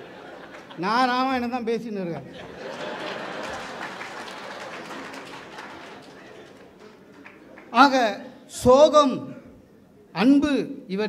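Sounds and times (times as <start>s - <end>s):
audience clapping: 0.0s - 0.8s, 2.5s - 8.0s
audience laughing: 0.0s - 1.0s, 2.3s - 7.7s.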